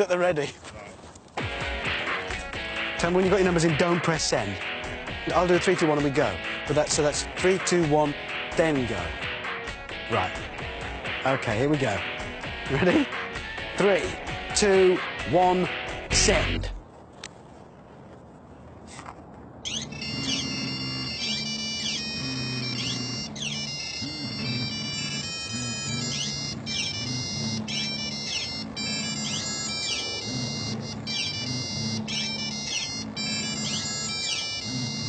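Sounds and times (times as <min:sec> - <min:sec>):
mobile phones ringing: 0:19.6 - 0:35.0
low buzzing: 0:19.7 - 0:35.0.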